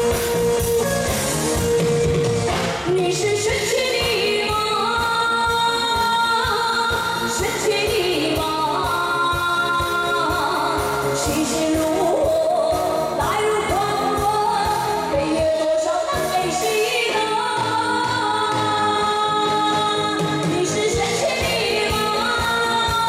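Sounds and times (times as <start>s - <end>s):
backing track with steady beat: 0.0s - 23.0s
woman singing into microphone: 2.8s - 23.0s.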